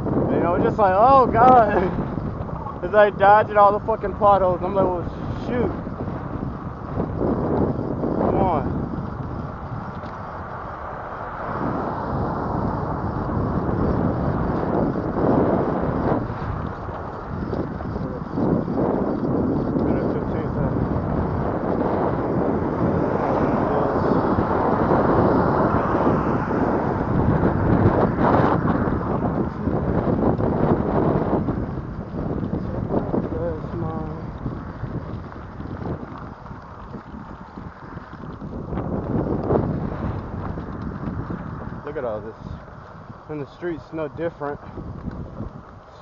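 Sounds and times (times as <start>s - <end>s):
bicycle tyre rumble on pavement: 0.0s - 46.0s
wind buffeting microphone: 0.0s - 46.0s.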